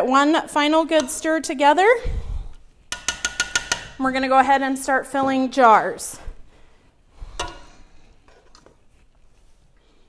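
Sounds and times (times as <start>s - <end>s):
spatula clinking against pot: 2.9s - 3.9s.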